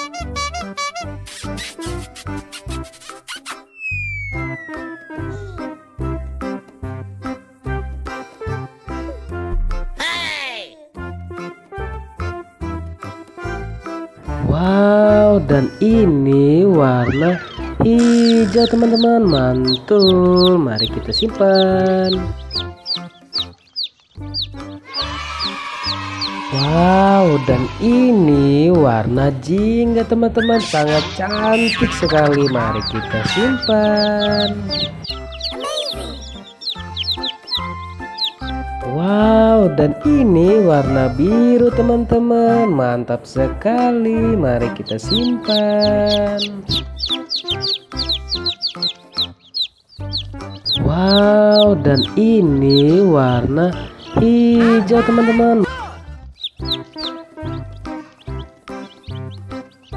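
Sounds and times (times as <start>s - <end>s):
instrumental background music: 0.0s - 59.9s
baby chicks peeping: 15.1s - 42.6s, 43.4s - 59.9s.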